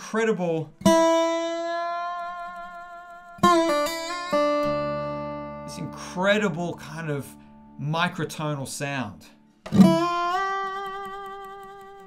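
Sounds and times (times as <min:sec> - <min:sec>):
slide guitar notes: 0:00.0 - 0:12.0.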